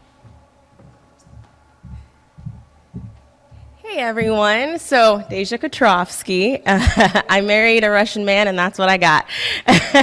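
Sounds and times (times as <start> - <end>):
footsteps thudding: 0.0 - 6.1
faint steady hum: 0.0 - 10.0.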